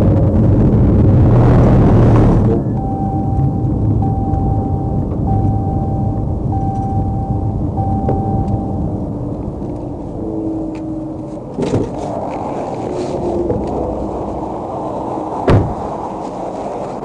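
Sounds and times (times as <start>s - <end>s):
car rumble rolling to a stop: 0.0s - 17.0s
electronic tone: 2.2s - 9.0s.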